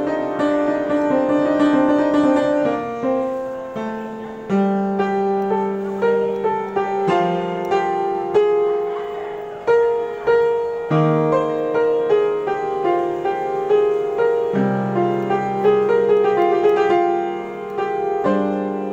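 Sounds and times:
piano slow improvisation: 0.0s - 18.9s.

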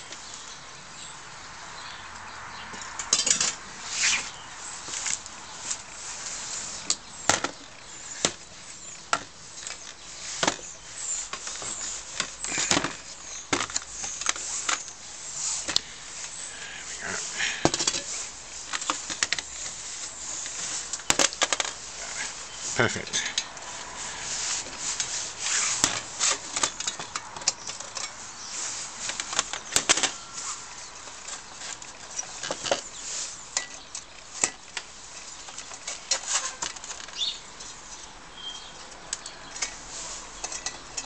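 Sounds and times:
cloth rustling: 23.6s - 26.8s.

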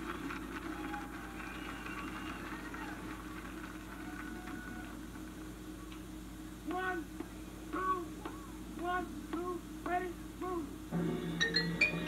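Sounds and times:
mains hum: 0.0s - 12.0s
tape hiss: 0.0s - 12.0s.

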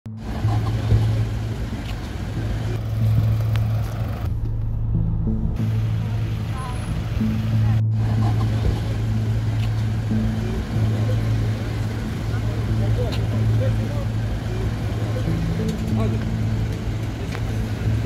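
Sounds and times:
car engines idling: 0.0s - 18.0s
indistinct voices: 5.2s - 18.0s.

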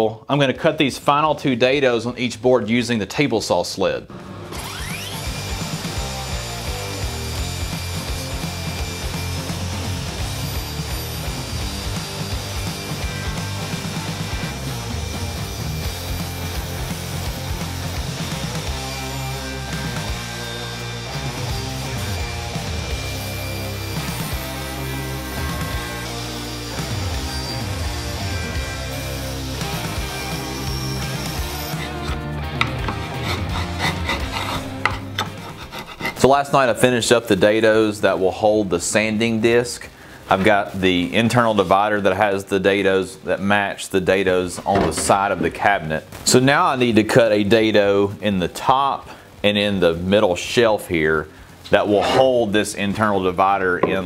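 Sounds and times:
table saw cutting plywood: 4.1s - 36.9s, 51.8s - 52.5s
background music: 4.1s - 54.0s.

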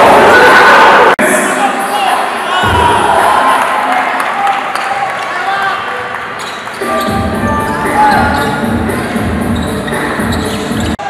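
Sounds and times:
crowd noise and voices: 0.0s - 11.0s.

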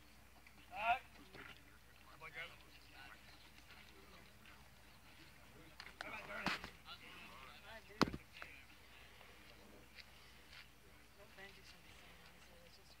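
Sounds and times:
people talking: 0.7s - 10.0s, 11.2s - 13.0s.

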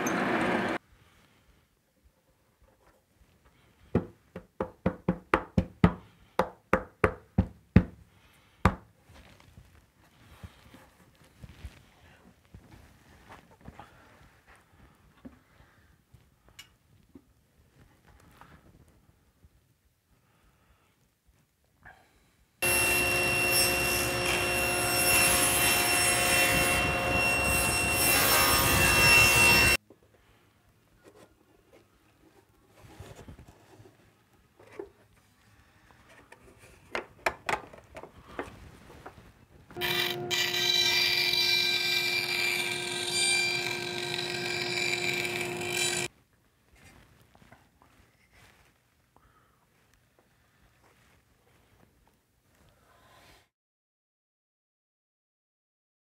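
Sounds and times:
table saw cutting plywood: 0.0s - 0.8s, 22.6s - 29.8s, 39.8s - 46.1s
sharp wooden knocks: 4.0s - 8.0s.

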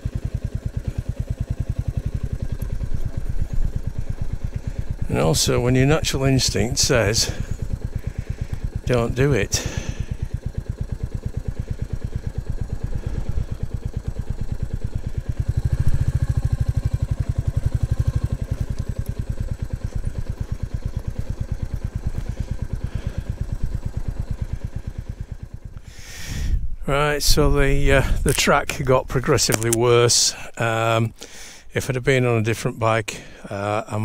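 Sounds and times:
motorcycle engine running: 0.0s - 31.7s.

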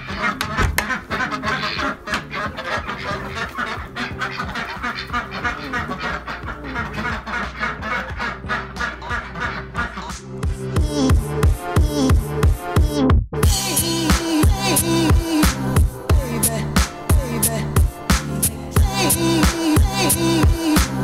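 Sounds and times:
ducks quacking: 0.0s - 10.3s
music playing: 0.0s - 21.0s.

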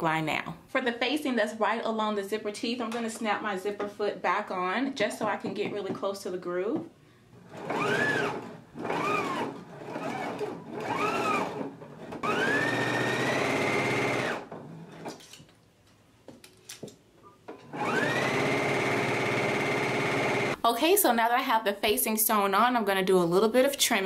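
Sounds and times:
sewing machine stitching: 7.4s - 15.2s, 17.7s - 20.6s.

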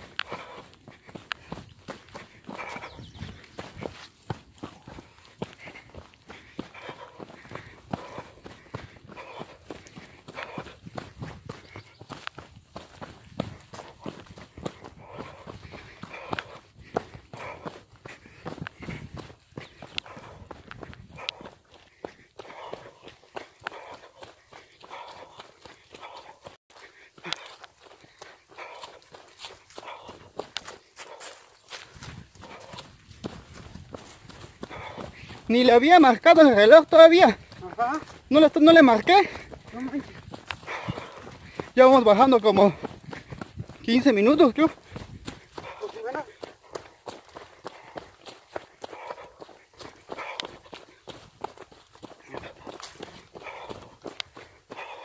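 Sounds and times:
running footsteps on dirt trail: 0.0s - 55.0s.

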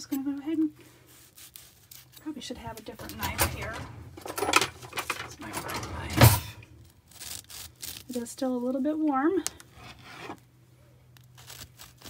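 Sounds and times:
knife sawing bread crust: 1.1s - 2.2s, 11.3s - 12.0s.

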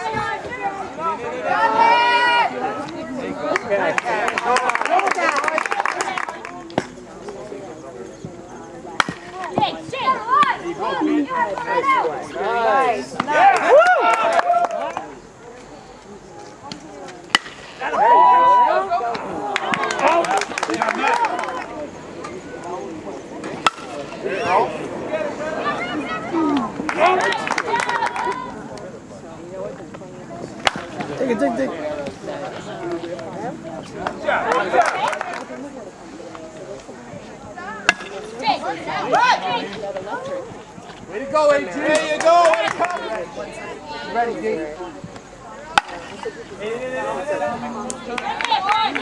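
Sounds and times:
people shouting: 0.0s - 2.8s, 9.6s - 15.0s, 17.3s - 21.7s
crowd cheering: 0.0s - 7.0s, 9.0s - 15.4s, 17.3s - 29.0s, 30.6s - 35.8s, 37.7s - 49.0s
voices shouting: 0.0s - 29.8s, 30.4s - 36.6s, 37.2s - 49.0s
bat cracking a ball: 9.0s - 9.6s, 17.3s - 17.9s, 23.4s - 24.2s, 30.6s - 31.1s, 37.8s - 38.2s, 45.7s - 46.0s
bat hitting baseball: 17.3s - 17.8s, 23.5s - 24.0s, 37.9s - 38.2s.

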